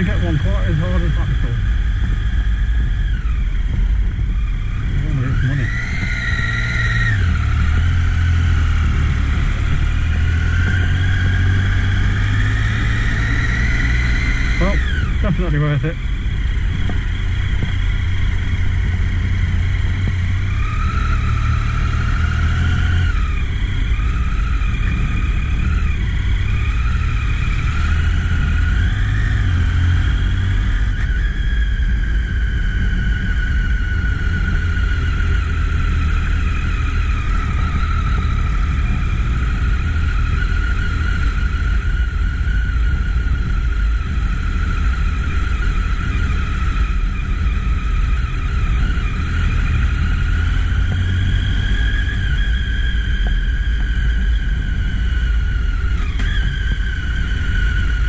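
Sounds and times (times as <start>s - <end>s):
motorcycle engine revving: 0.0s - 58.0s
wind and road noise rumble: 0.0s - 58.0s.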